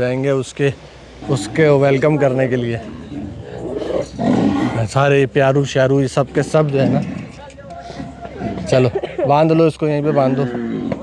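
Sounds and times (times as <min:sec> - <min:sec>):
cattle lowing: 0:01.1 - 0:05.0, 0:06.1 - 0:08.9, 0:10.1 - 0:11.0.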